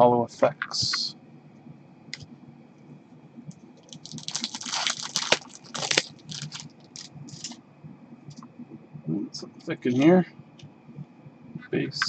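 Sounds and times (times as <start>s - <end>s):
trading cards rustling: 3.8s - 7.6s.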